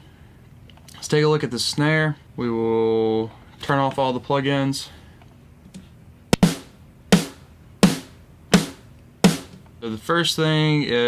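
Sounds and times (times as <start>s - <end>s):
snare drum strikes: 6.3s - 9.6s.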